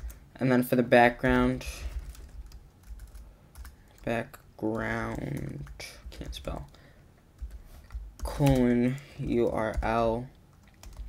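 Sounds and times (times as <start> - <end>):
computer keyboard keystrokes: 1.9 - 4.1, 7.4 - 10.0, 10.6 - 11.0.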